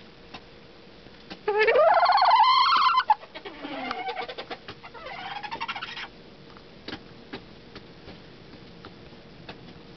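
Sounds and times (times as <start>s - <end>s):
soft low rooster calls: 1.5s - 6.0s.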